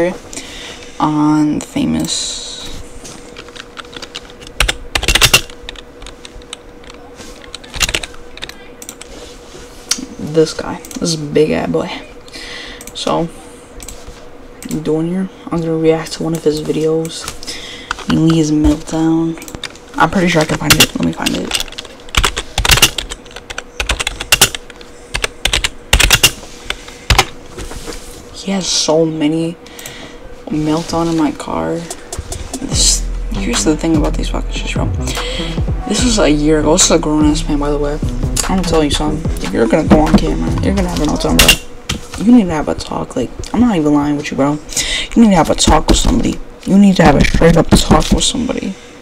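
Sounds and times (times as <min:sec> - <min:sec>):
faint steady hum: 0:00.0 - 0:49.0
keyboard typing clicks: 0:20.7 - 0:26.3.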